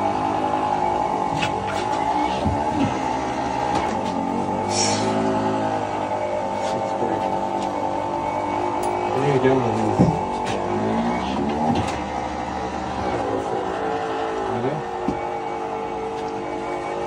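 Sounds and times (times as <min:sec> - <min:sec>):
electric motor whining: 0:00.0 - 0:17.0.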